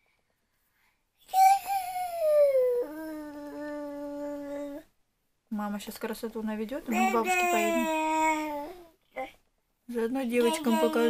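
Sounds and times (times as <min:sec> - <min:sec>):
toddler wailing: 0:07.0 - 0:08.8, 0:10.4 - 0:11.0.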